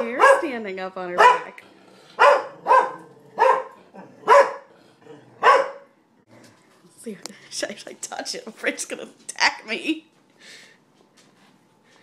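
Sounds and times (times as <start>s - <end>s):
dog barking: 0.0s - 0.5s, 1.2s - 1.6s, 2.2s - 4.7s, 5.4s - 6.0s.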